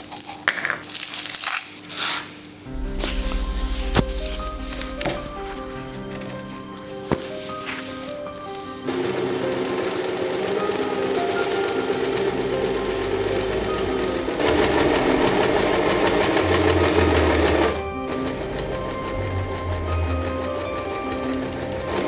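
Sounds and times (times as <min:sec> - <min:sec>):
electric sewing machine stitching: 0:08.8 - 0:22.0.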